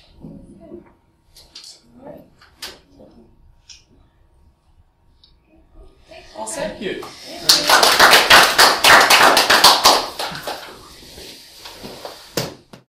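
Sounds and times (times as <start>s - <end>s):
audience applause: 7.4s - 10.8s.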